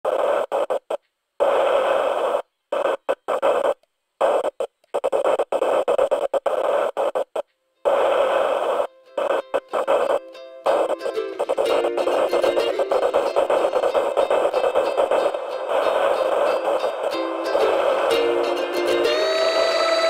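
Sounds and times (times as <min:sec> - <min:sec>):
static noise bursts: 0:00.0 - 0:20.0
plucked string tune: 0:08.9 - 0:20.0.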